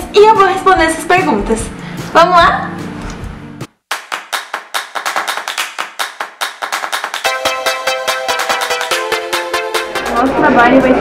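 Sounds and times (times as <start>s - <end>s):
rapid clap-like hits: 3.7s - 10.0s.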